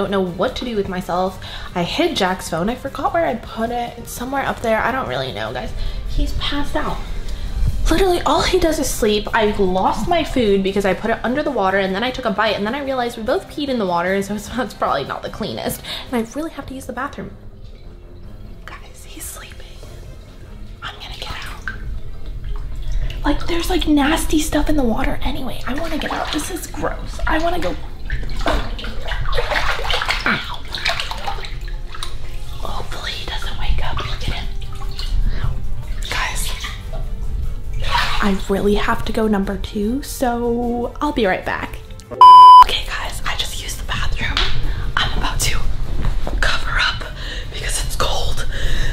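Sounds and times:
woman speaking: 0.0 - 7.1, 7.9 - 17.4, 23.2 - 27.8
woman whispering: 18.6 - 19.9, 20.8 - 21.6, 32.6 - 34.4, 46.4 - 48.5
censor bleep: 42.2 - 42.7.

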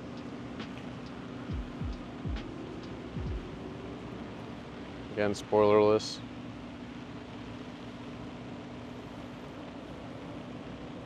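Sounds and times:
background hiss: 0.0 - 11.0
low mechanical hum: 0.0 - 11.0.

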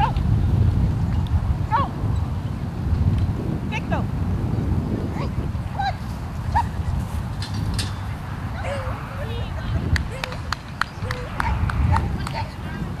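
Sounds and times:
wind rumble on microphone: 0.0 - 13.0
distant voices calling: 5.1 - 13.0
sharp claps or clicks: 9.9 - 12.4.

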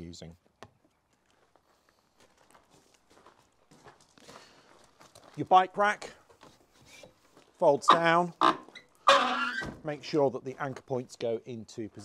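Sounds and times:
faint scuffing footsteps: 0.4 - 7.7.

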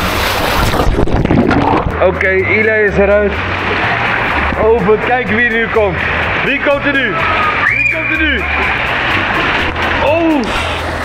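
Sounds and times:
water rushing into pool: 0.0 - 11.0
background music: 1.7 - 11.0.

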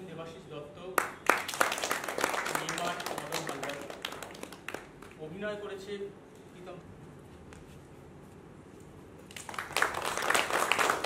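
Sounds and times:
people clapping: 1.0 - 5.4, 9.3 - 11.0.

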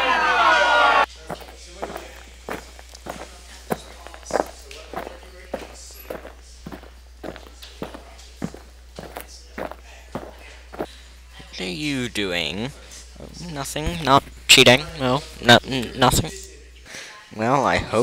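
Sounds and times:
overlapping voices: 0.0 - 11.0
footsteps walking: 1.0 - 11.6.

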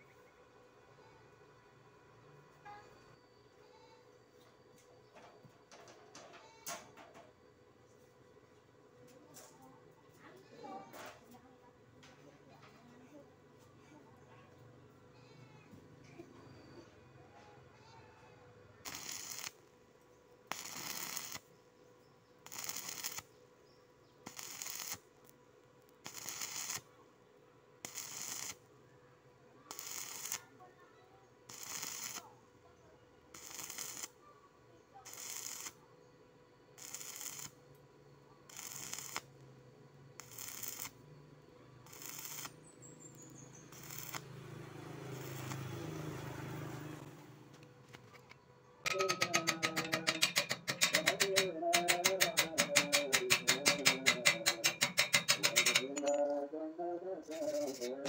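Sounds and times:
welding arc crackling: 18.8 - 19.6, 20.5 - 21.5, 22.5 - 23.3, 24.2 - 25.0, 26.0 - 26.9, 27.8 - 28.6, 29.7 - 30.5, 31.5 - 32.3, 33.3 - 34.2, 35.0 - 35.8, 36.8 - 37.6, 38.5 - 39.4, 40.2 - 41.0, 41.8 - 46.7, 48.9 - 56.0, 57.3 - 58.0.

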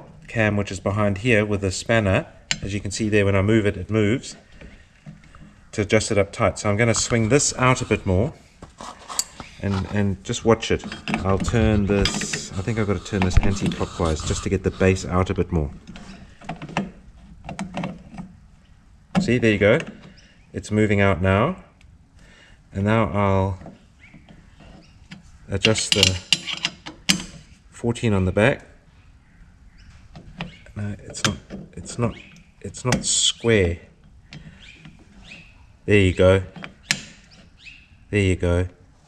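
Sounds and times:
person speaking: 5.7 - 8.4, 9.6 - 15.8
spanner clicking and scraping: 10.8 - 15.1, 25.6 - 27.4.

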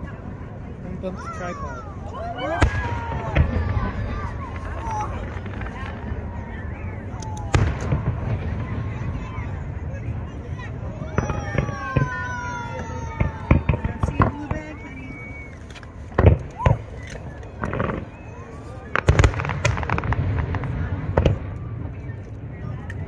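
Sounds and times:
fireworks bangs and pops: 2.5 - 23.0.

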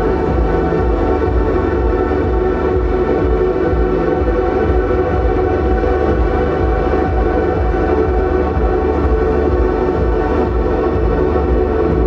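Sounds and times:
ambient electronic drone: 0.0 - 12.0
low pulsing beat: 0.0 - 12.0.

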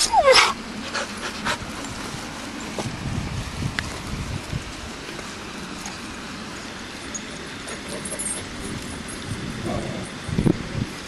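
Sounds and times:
dog yelping whine: 0.0 - 0.6.

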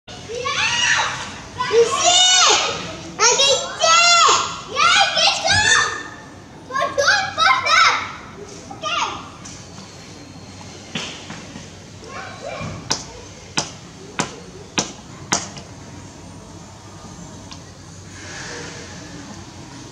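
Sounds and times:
child shouting: 0.3 - 8.1.

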